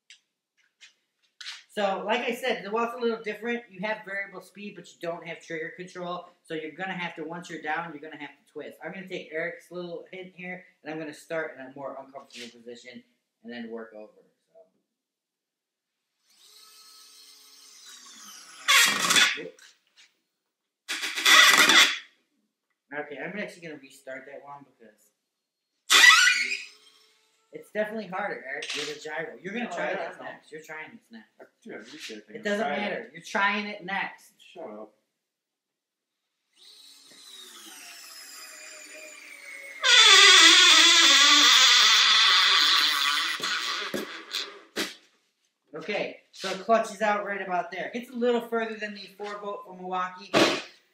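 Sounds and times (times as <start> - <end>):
cordless screwdriver motor whine: 16.3 - 19.4, 20.9 - 22.0, 25.9 - 27.5, 36.5 - 43.6
loud harsh bursts: 16.5 - 19.5, 20.9 - 22.1, 25.9 - 27.4, 36.6 - 44.9.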